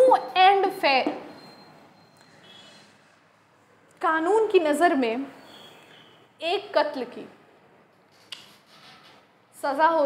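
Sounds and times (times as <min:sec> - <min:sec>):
woman speaking: 0:00.0 - 0:01.2, 0:04.0 - 0:05.3, 0:06.4 - 0:07.4, 0:09.6 - 0:10.0.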